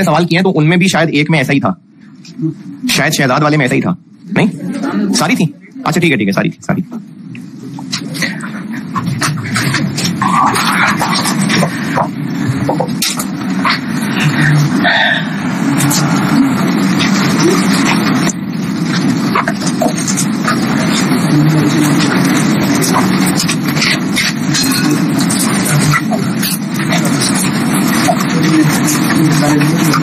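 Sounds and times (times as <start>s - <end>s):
murmur of many voices: 0.0s - 30.0s.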